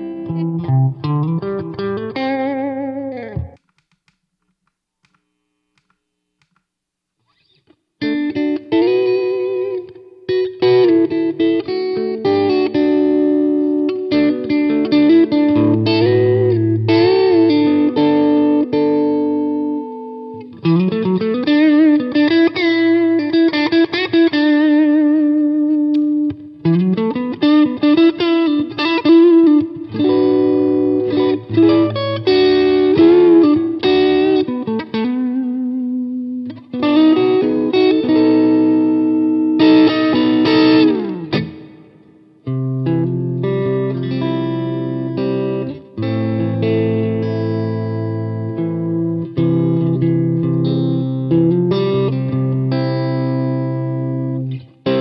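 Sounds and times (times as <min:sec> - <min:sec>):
electric guitar melodic lead: 0:00.0 - 0:03.7, 0:07.2 - 0:55.0.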